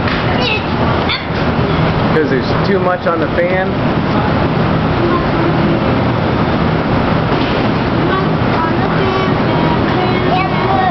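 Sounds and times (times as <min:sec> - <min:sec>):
low steady hum: 0:00.0 - 0:10.9
air blower rushing: 0:00.7 - 0:10.9.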